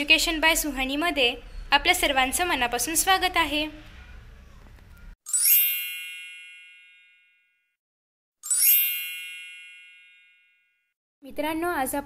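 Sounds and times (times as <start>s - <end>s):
bright chime: 5.3s - 7.6s, 8.4s - 10.8s.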